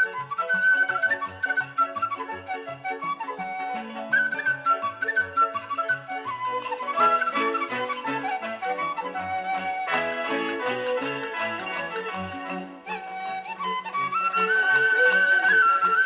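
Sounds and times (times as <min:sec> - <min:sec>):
bamboo flute melody: 0:00.0 - 0:16.0.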